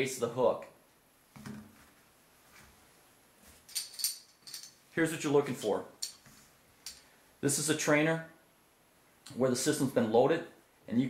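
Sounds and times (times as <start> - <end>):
soft rustle: 1.2 - 7.2
metal hooks clicking and tapping: 3.7 - 4.8, 6.0 - 6.2.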